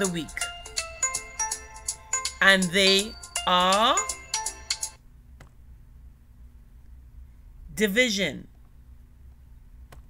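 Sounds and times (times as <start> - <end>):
faint steady hum: 0.0 - 10.0
electronic chime: 0.4 - 5.0.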